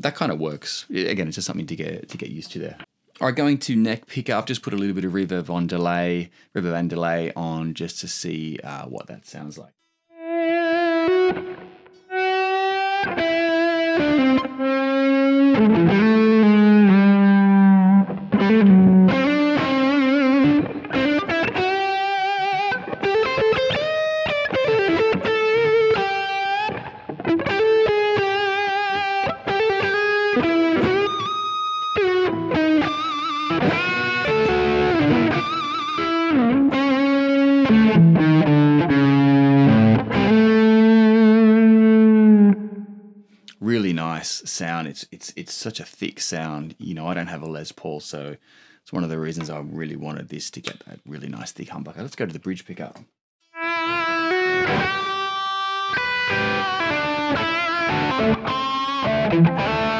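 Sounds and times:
electric guitar lead lines: 10.2s - 43.2s, 53.5s - 59.9s.

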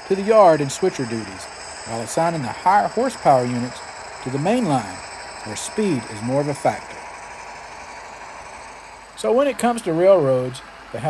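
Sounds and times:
model diesel engine idling hum: 0.0s - 11.0s.

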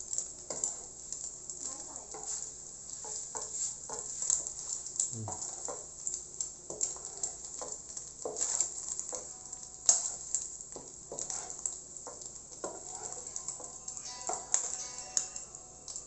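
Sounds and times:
egg sizzling in hot oil: 0.0s - 16.0s
spatula scraping and knocking pan: 0.1s - 15.3s.

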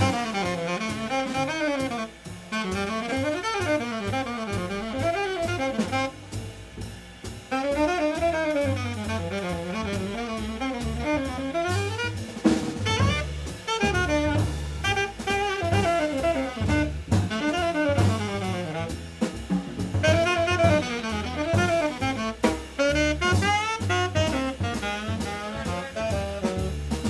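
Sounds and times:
saxophone solo: 0.0s - 6.4s, 7.5s - 27.0s
cymbal-led drumming: 0.0s - 27.0s
double bass notes: 0.0s - 27.0s.

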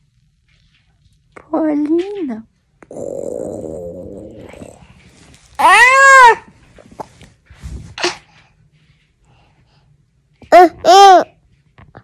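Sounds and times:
soft toddler vocal sound: 2.8s - 5.0s
toddler raspy noise: 5.6s - 6.5s
toddler squealing: 5.6s - 6.5s.

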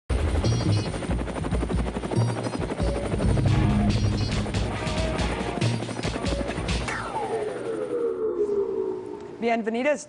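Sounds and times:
helicopter rotor chop: 0.1s - 8.2s
music playing: 0.5s - 7.5s.

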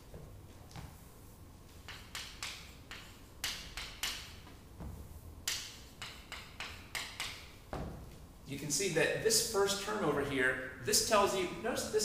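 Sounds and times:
chalk writing on a blackboard: 1.7s - 7.5s.

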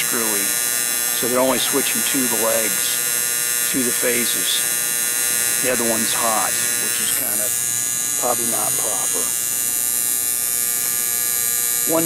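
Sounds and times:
electrical contactor hum: 0.0s - 12.0s.

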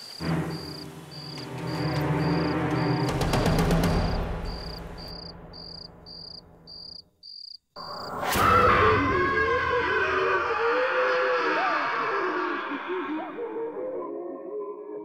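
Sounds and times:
eerie music with sliding tones: 0.0s - 5.9s
night insects chirping: 0.0s - 9.8s.

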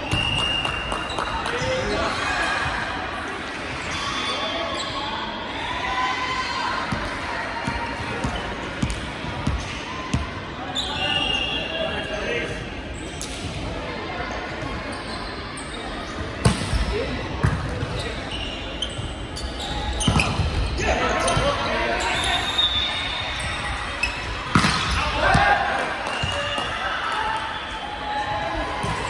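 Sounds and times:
volleyball struck by hands: 24.5s - 25.5s.

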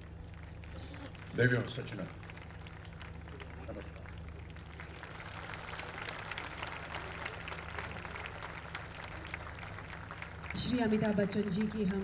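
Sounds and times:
audience applauding: 0.0s - 12.0s
steady low hum: 0.0s - 12.0s.

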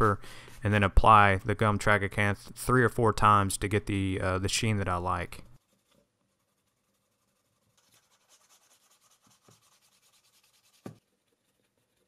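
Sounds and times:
wooden burnisher rubbing leather: 5.6s - 12.0s.

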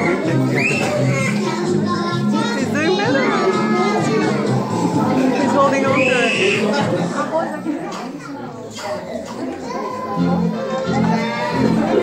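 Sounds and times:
adult chatter: 0.0s - 12.0s
young children's voices: 0.0s - 12.0s.

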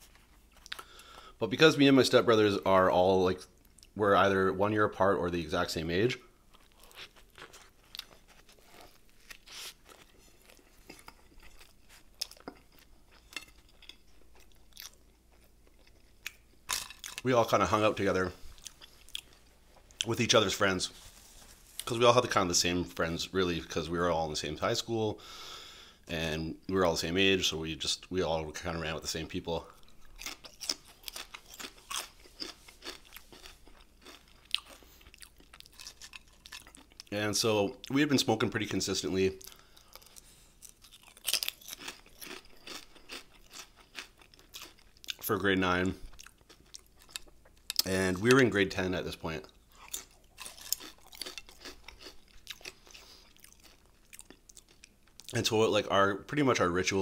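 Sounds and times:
close-miked chewing: 6.5s - 20.1s, 29.6s - 37.1s, 39.4s - 48.4s, 49.4s - 55.4s
bread crunching: 6.5s - 22.0s, 29.2s - 37.1s, 39.4s - 48.4s, 49.6s - 55.4s.

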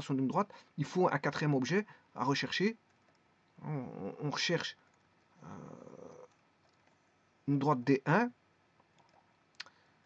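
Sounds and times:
man saying euh: 3.6s - 4.6s, 5.4s - 6.3s.

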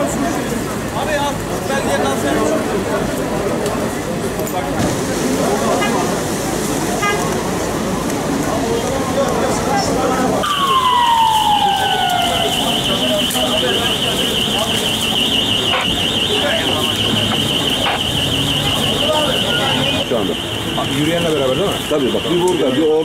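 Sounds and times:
background voices and commotion: 0.0s - 23.0s
siren high warble: 10.4s - 22.4s.

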